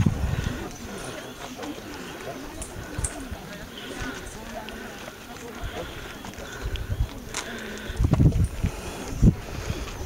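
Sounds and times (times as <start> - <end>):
faint voices: 0.0 - 10.0
footsteps on a lane: 0.0 - 10.0.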